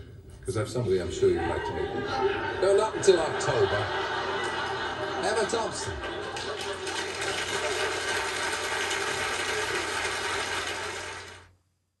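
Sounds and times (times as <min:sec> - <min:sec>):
studio audience applauding: 0:04.2 - 0:11.5.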